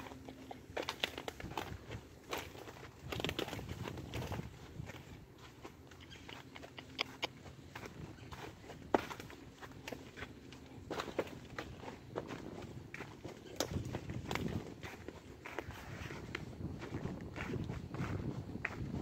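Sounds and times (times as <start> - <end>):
horse hooves crunching dry leaves: 0.0 - 19.0.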